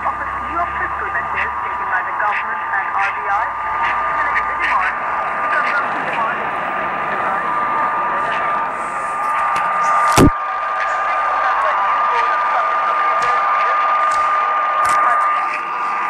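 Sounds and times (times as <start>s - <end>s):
faint radio voice: 0.0s - 9.1s, 9.8s - 16.0s
radio hiss: 0.0s - 16.0s
sharp static crash: 9.2s - 10.4s
static crackles: 9.2s - 15.8s.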